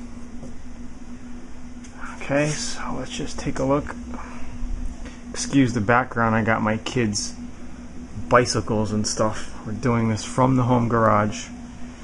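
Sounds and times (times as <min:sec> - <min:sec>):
faint rumble and hiss: 0:00.0 - 0:12.0
steady low hum: 0:00.0 - 0:12.0.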